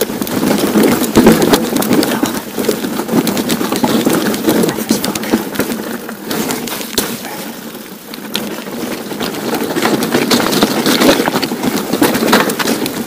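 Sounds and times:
bike clattering and rattling: 0:00.0 - 0:13.0
tyres crunching on stones: 0:00.0 - 0:13.0.

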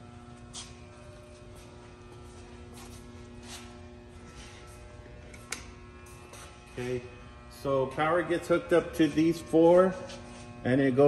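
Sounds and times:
transformer electrical hum: 0:00.0 - 0:11.0.

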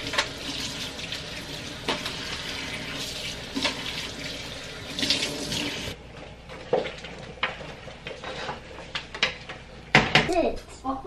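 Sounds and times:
faucet running into steel sink: 0:00.0 - 0:06.0.

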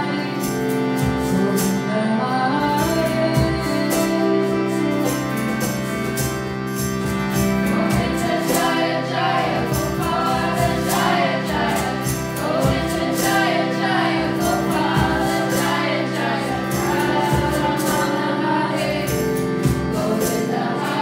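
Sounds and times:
guitar: 0:00.0 - 0:21.0
sustained drone: 0:04.4 - 0:21.0
group chanting: 0:08.0 - 0:21.0.

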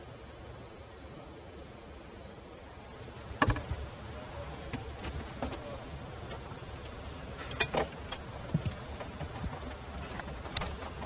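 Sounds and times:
low workshop hum: 0:00.0 - 0:11.0.

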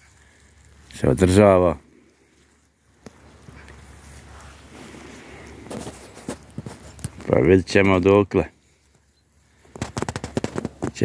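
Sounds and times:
goats rustling in grass: 0:00.0 - 0:11.0.

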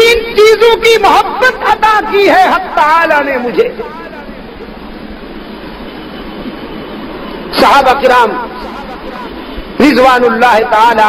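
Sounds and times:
steady room noise hiss: 0:00.0 - 0:11.0.

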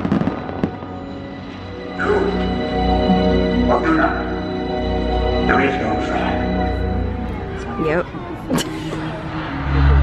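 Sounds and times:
deep rumble of amplified soundtrack: 0:00.0 - 0:10.0.

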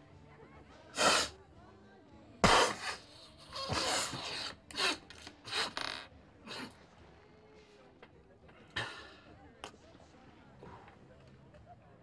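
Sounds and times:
sharp hissing sniffs: 0:01.0 - 0:01.4.

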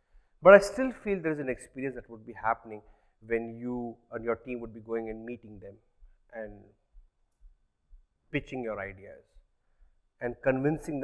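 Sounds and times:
man speaking: 0:00.4 - 0:06.8, 0:08.3 - 0:09.3, 0:10.2 - 0:11.0.

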